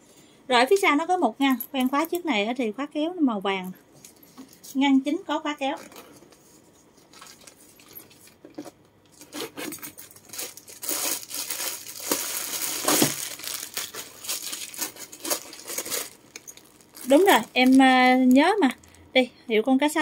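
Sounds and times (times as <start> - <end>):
plastic crinkling and rustling: 5.8 - 19.1.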